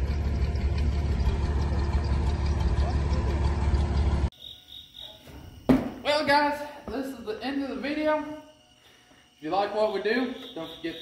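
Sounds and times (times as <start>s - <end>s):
tractor engine rumbling: 0.0s - 4.3s
faint cricket chirps: 4.3s - 11.0s.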